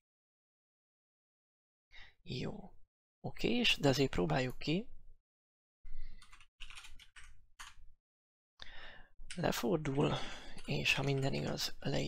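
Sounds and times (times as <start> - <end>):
computer keyboard typing: 6.2 - 7.8, 10.5 - 11.6.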